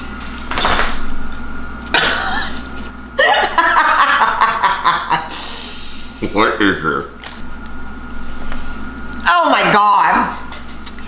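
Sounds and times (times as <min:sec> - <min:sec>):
people laughing: 0:03.2 - 0:05.6.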